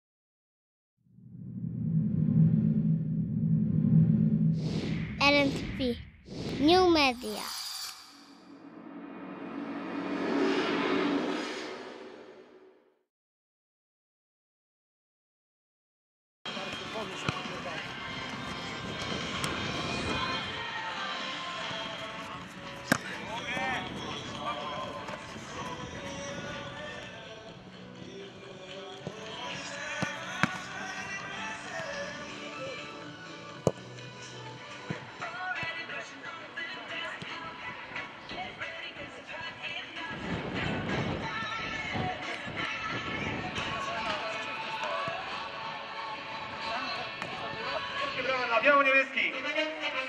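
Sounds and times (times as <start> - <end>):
music with voice: 16.5 - 49.3.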